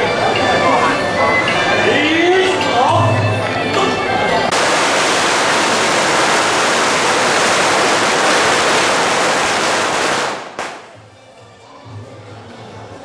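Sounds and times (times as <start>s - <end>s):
string of firecrackers crackling: 4.5s - 11.2s.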